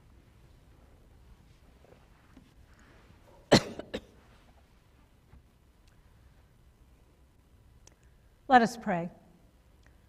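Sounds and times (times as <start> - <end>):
person coughing: 3.5 - 4.2.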